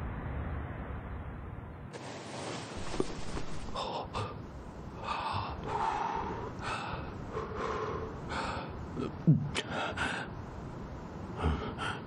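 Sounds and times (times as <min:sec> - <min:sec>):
man breathing heavily: 0:03.6 - 0:10.4, 0:11.3 - 0:12.0.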